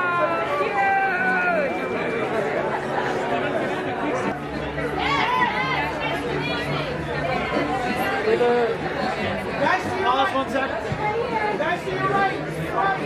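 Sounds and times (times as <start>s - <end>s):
people chattering: 0.0s - 13.0s
voice rising above chatter: 0.0s - 13.0s.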